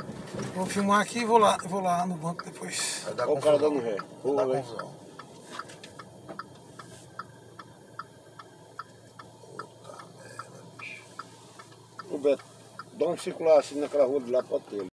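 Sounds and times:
engine and road hum: 0:00.0 - 0:14.9
turn signal indicator clicking: 0:00.0 - 0:14.9.

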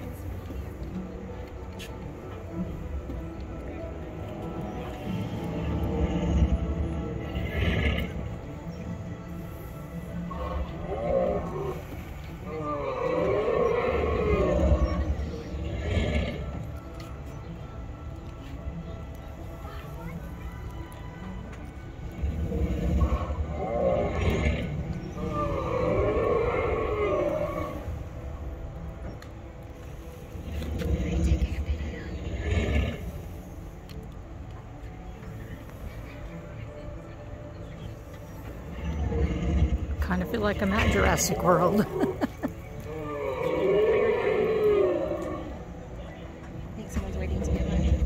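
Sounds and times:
dinosaur roars and growls: 0:10.3 - 0:16.6, 0:22.1 - 0:28.1, 0:38.7 - 0:40.0, 0:42.9 - 0:45.6
low rumbling: 0:37.9 - 0:48.0.

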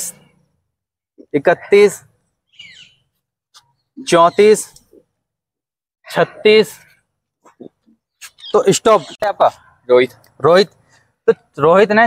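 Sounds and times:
high falling bird chirp: 0:02.0 - 0:05.2, 0:06.8 - 0:11.2.

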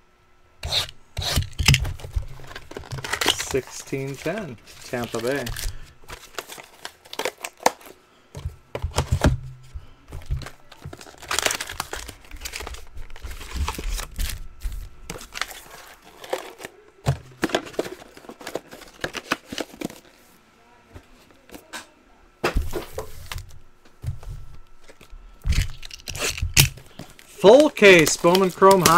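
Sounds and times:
foil card packs crinkling: 0:01.4 - 0:09.2, 0:10.1 - 0:20.2, 0:24.8 - 0:28.9.

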